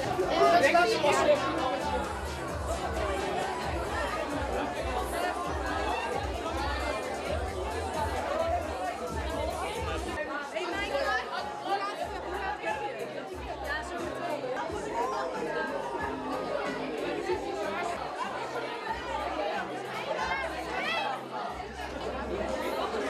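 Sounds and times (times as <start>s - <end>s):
music with steady bass beat: 0.0s - 10.2s
crowd chatter: 0.0s - 23.0s.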